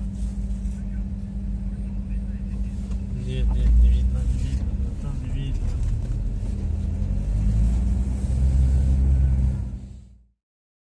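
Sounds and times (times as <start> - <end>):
minibus engine and road noise: 0.0 - 10.4.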